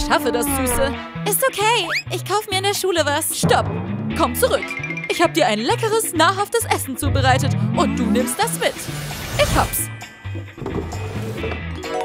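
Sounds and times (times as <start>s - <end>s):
background music with stepping bass: 3.4s - 12.0s.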